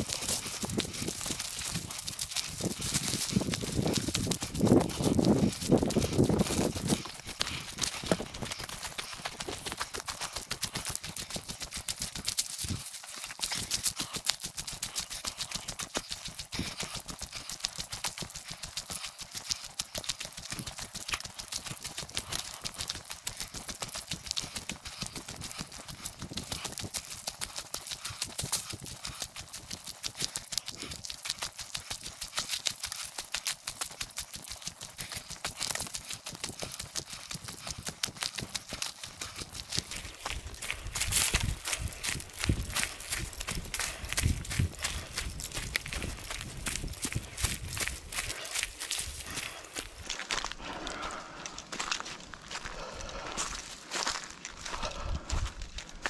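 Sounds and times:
fast footsteps on dry leaves: 0:00.0 - 0:56.0.

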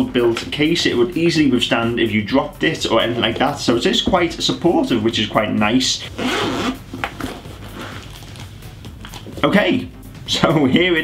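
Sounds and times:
zipper pulled open: 0:06.0 - 0:08.5.

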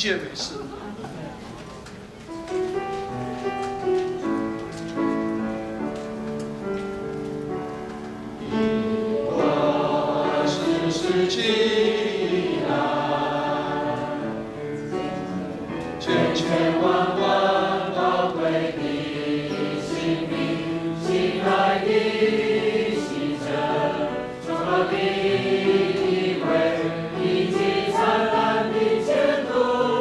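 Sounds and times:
congregation singing a hymn: 0:04.2 - 0:30.0.

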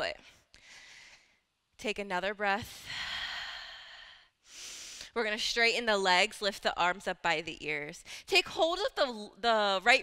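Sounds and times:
woman breathing: 0:00.2 - 0:01.5, 0:02.7 - 0:05.2.

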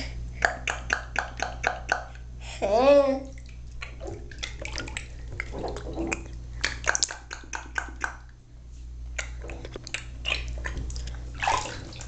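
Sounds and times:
bath water splashing: 0:03.2 - 0:08.3, 0:09.2 - 0:12.0.

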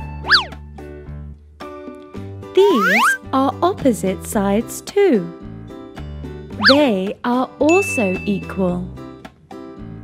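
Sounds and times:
light children's music: 0:00.0 - 0:10.0
cartoon pitch sweep effect: 0:00.3 - 0:00.5, 0:02.6 - 0:03.2, 0:06.6 - 0:06.8.

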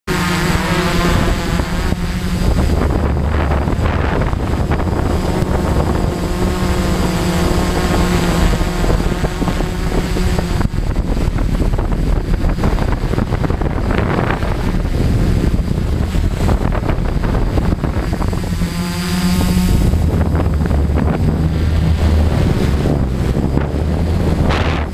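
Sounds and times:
quadcopter motors whining: 0:00.1 - 0:24.9.

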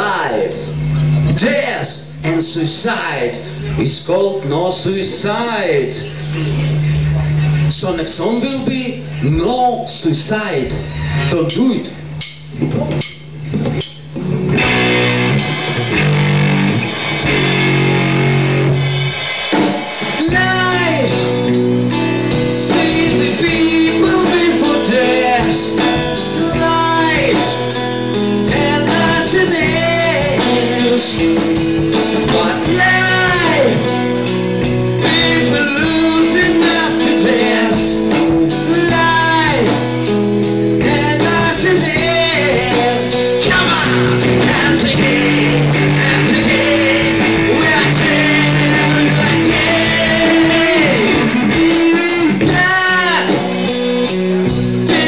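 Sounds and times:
drums: 0:00.0 - 0:55.0
rock band playing live: 0:00.0 - 0:55.0
electric guitar: 0:10.7 - 0:55.0
man singing: 0:20.2 - 0:21.4, 0:22.4 - 0:34.1, 0:34.9 - 0:40.1, 0:40.8 - 0:53.8, 0:54.8 - 0:55.0.

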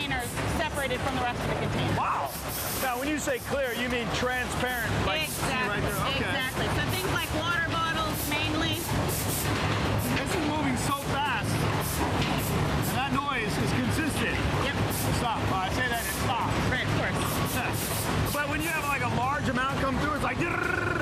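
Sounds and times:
conveyor machinery humming: 0:00.0 - 0:21.0
air jets hissing bursts: 0:02.1 - 0:03.9, 0:06.8 - 0:10.2, 0:10.8 - 0:13.5, 0:14.7 - 0:19.0.

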